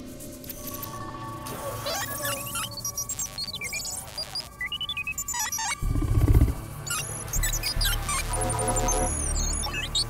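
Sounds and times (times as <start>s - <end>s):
warbling electronic sound effect: 5.7s - 6.6s.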